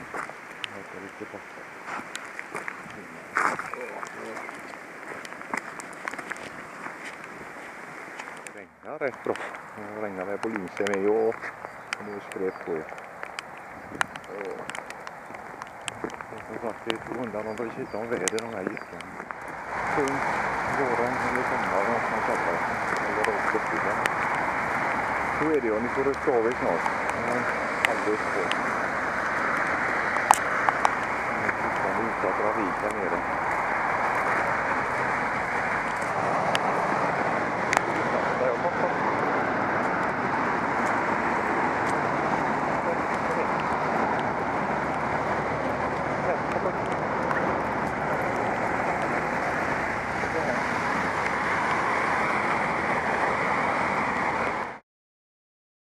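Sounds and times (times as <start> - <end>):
sharp taps of raindrops: 0.0 - 0.8, 1.8 - 38.2, 38.8 - 54.8
rain pattering: 0.0 - 54.8.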